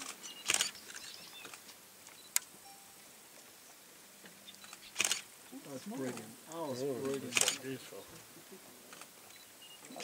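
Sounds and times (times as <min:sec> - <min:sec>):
sharp click: 0:00.0 - 0:02.5, 0:04.5 - 0:05.3.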